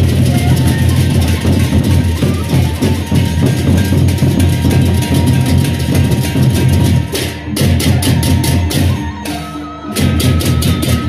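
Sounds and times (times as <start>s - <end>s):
barrel drums: 0.0s - 11.0s
hand cymbals clashing: 0.0s - 11.0s.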